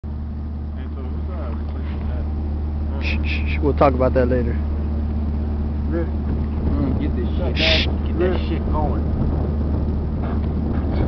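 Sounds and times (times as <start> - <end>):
truck engine idling: 0.0 - 11.0
faint voices talking: 0.7 - 4.9, 5.8 - 9.2.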